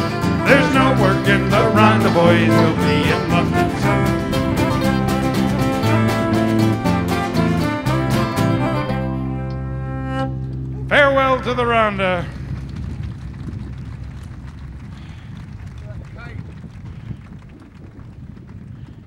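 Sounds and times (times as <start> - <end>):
falling sliding notes: 0.0 - 12.1
folk band playing: 0.0 - 12.4
low background rumble: 0.0 - 19.0.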